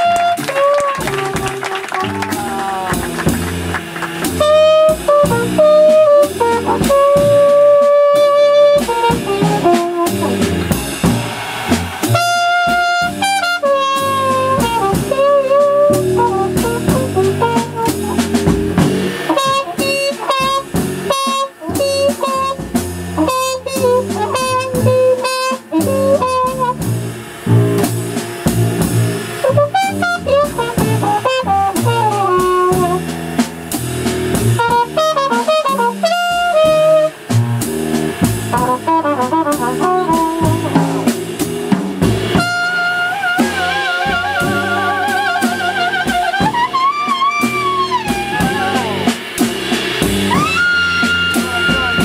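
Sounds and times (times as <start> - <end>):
drum kit: 0.0 - 52.0
trumpet improvising: 0.0 - 52.0
upright double bass: 0.0 - 52.0.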